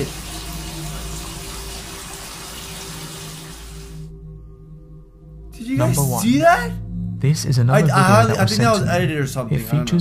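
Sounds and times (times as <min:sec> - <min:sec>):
tap water running into bathtub: 0:00.0 - 0:04.0.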